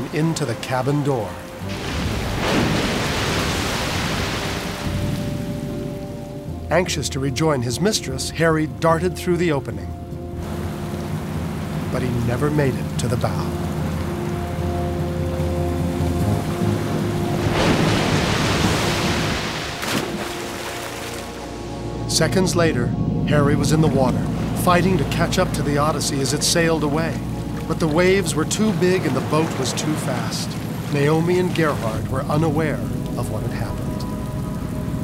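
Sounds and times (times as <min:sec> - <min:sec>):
water splash: 0:00.0 - 0:05.7, 0:10.4 - 0:21.6, 0:23.8 - 0:35.0
wave crashing over boat: 0:01.6 - 0:05.4, 0:17.1 - 0:21.4, 0:28.6 - 0:32.3
dramatic score of held tones: 0:20.9 - 0:29.9.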